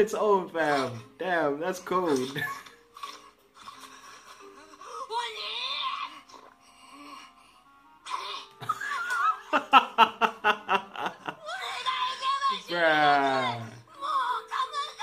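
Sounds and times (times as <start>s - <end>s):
background music: 0.0s - 15.0s
man laughing hard: 8.6s - 11.3s.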